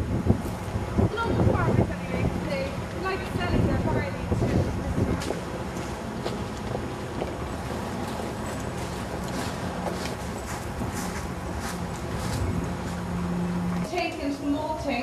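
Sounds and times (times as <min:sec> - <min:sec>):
outdoor background rumble: 0:00.0 - 0:15.0
footsteps crunching on gravel: 0:05.1 - 0:13.1.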